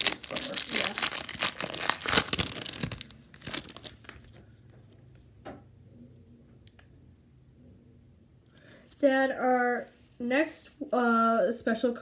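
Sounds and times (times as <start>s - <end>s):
card pack wrapper tearing and crinkling: 0.0s - 4.2s.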